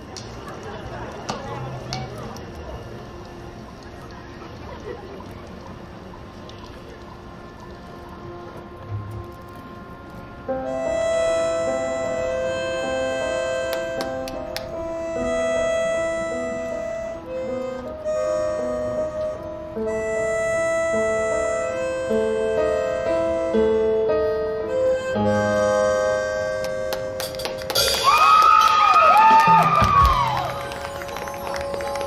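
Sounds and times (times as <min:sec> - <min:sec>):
marching band playing: 0:25.2 - 0:28.4, 0:29.2 - 0:32.0.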